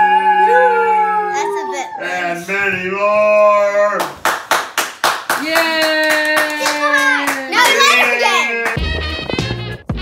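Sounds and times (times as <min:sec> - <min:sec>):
hands clapping fast: 0:04.0 - 0:09.6
person cheering: 0:05.4 - 0:08.6.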